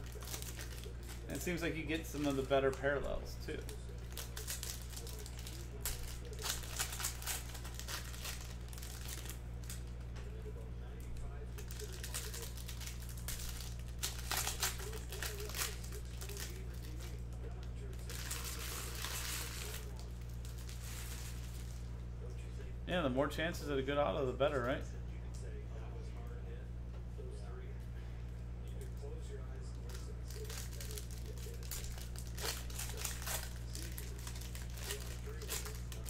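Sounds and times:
foil wrapper crinkling: 0.0s - 10.0s, 10.9s - 21.9s, 28.8s - 36.0s
steady low hum: 0.0s - 36.0s.

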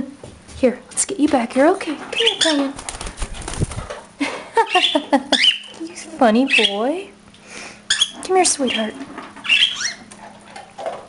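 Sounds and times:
bird wings flapping: 2.6s - 4.1s
rustling and bumping on microphone: 2.7s - 4.2s.

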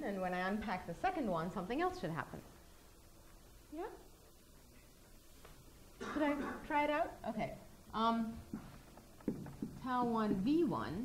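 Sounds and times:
woman speaking: 0.0s - 2.5s, 6.1s - 8.5s, 9.8s - 11.0s.

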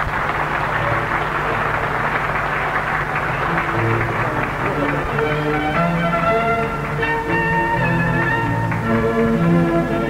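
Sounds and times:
crowd applauding: 0.0s - 10.0s
music: 0.4s - 10.0s.

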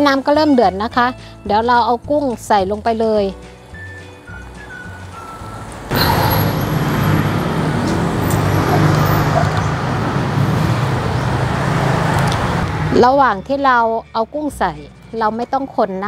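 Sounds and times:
faint background music: 0.0s - 5.9s, 12.9s - 16.0s.

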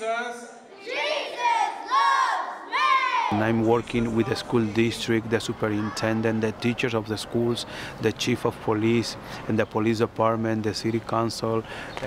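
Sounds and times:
children shouting: 0.7s - 3.4s, 4.0s - 6.5s.

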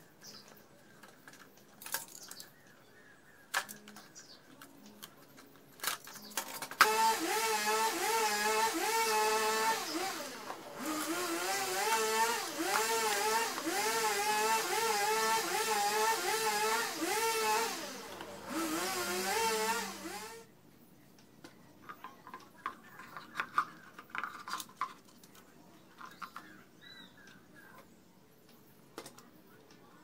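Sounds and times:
small electric motor whining: 6.8s - 20.5s.

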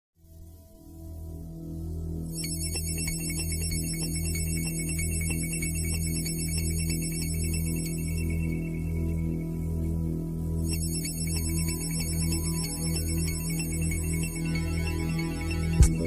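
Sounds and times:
low throbbing pulse: 13.4s - 16.0s.

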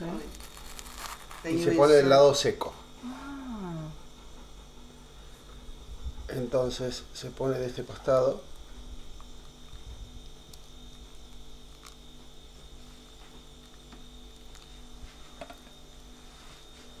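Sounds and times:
electrical hum with high whine: 0.0s - 17.0s.

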